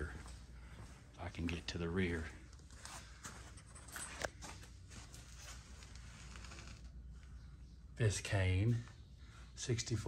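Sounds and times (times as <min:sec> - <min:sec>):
faint rustling and handling noise: 0:00.0 - 0:07.6.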